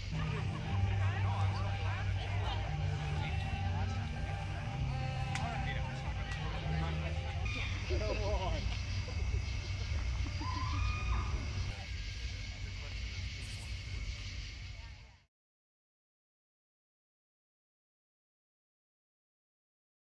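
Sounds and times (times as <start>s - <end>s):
low electronic drone: 0.0s - 15.0s.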